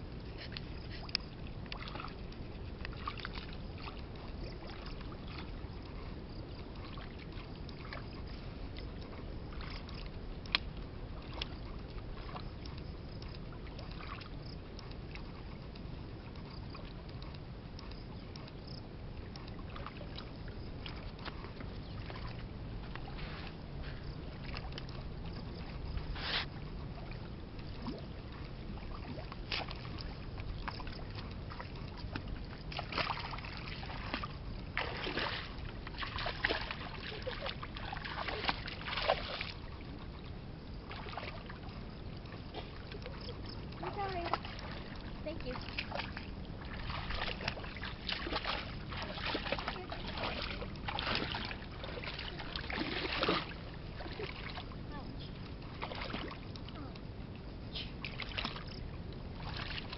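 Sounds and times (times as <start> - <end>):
steady low background noise: 0.0 - 59.9
sharp water plops: 45.5 - 54.6
hands splashing in muddy water: 46.7 - 54.6.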